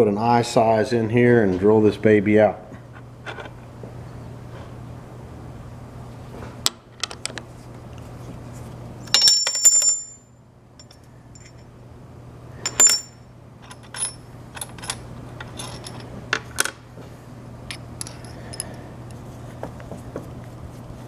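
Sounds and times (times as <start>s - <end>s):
drill bits clinking on metal: 9.1s - 10.2s, 12.6s - 16.1s.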